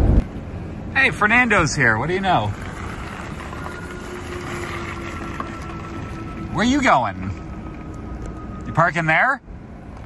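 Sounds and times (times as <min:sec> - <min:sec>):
wind noise on microphone: 0:00.0 - 0:00.5
electric car hum: 0:00.0 - 0:10.0
low rumble: 0:00.0 - 0:10.0.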